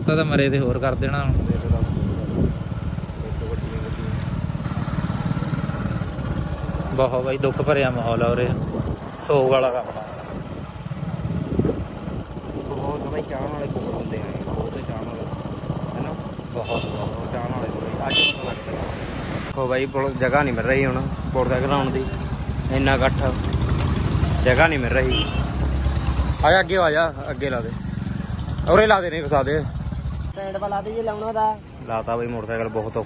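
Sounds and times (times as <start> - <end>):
people talking: 0.0 - 2.4, 3.1 - 4.3, 6.8 - 8.6, 12.6 - 18.9
motorcycle engine running: 0.0 - 31.6.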